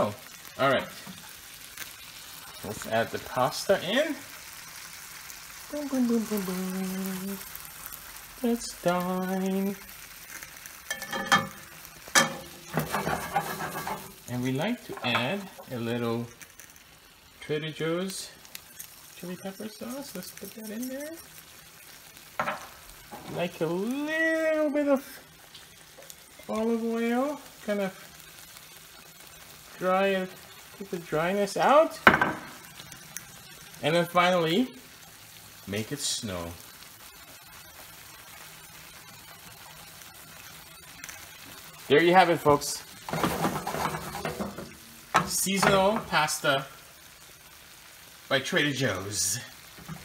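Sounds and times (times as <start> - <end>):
sauce sizzling in skillet: 0.0 - 50.0
stirring noise: 10.9 - 14.2, 43.0 - 46.2
knocks against pan: 32.1 - 32.5.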